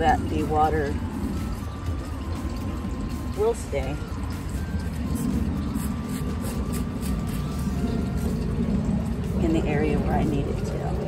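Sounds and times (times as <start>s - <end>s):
faint held musical tones: 0.0s - 11.0s
steady low rumble: 0.0s - 11.0s.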